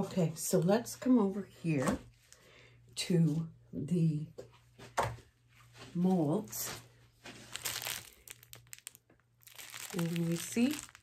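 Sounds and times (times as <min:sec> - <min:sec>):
paper crinkling and rustling: 0:07.3 - 0:11.0.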